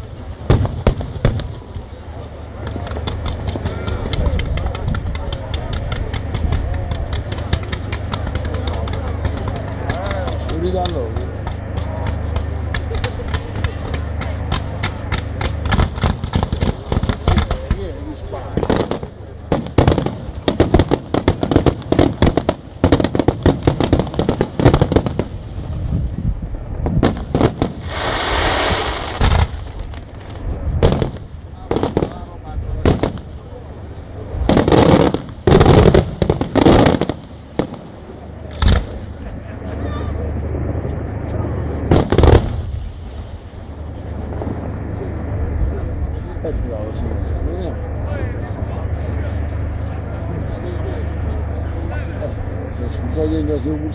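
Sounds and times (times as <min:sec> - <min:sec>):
hissing rush: 0:12.2 - 0:39.2
firework shells bursting: 0:18.5 - 0:25.5, 0:34.4 - 0:39.1.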